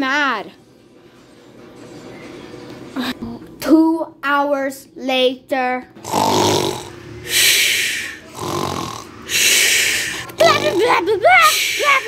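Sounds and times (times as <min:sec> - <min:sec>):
person pretending to snore: 0:06.0 - 0:10.9.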